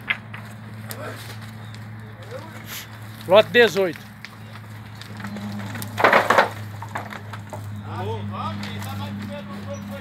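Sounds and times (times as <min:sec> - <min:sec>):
faint voices: 0:00.8 - 0:06.3.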